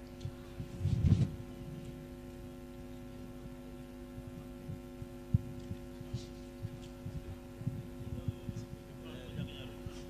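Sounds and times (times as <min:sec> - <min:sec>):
electrical hum: 0:00.0 - 0:10.0
soft low thumps: 0:00.2 - 0:02.6, 0:03.2 - 0:10.0.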